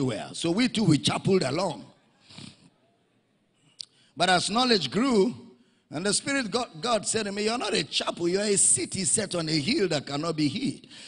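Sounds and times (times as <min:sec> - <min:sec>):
mouth click: 0:03.8 - 0:04.0.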